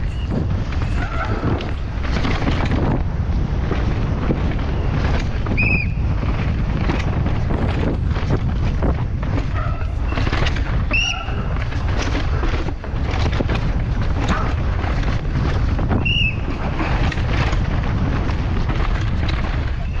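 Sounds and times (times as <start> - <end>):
bike clattering over rocks: 0.0 - 20.0
wind buffeting microphone: 0.0 - 20.0.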